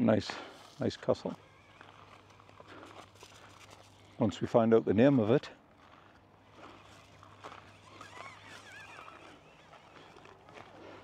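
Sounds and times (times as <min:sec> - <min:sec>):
distant birds calling: 0:00.0 - 0:05.0, 0:05.7 - 0:11.0.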